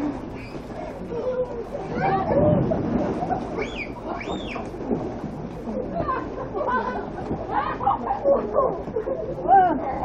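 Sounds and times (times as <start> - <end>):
water splashing and churning: 0.0 - 10.0
people squealing: 3.6 - 4.7.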